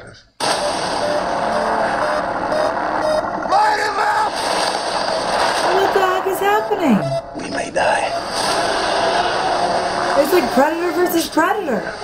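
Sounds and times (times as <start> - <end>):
movie trailer score music: 0.4 - 12.0.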